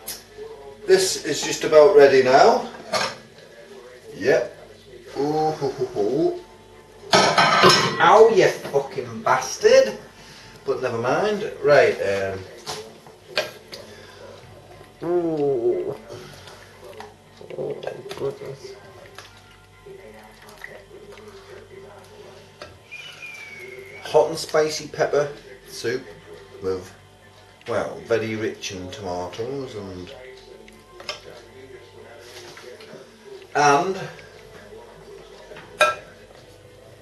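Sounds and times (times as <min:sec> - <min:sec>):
kitchenware clinking: 0:02.8 - 0:03.3, 0:07.1 - 0:08.9, 0:35.6 - 0:36.2
liquid drips: 0:15.8 - 0:21.4
faint wavering tune: 0:20.9 - 0:24.4.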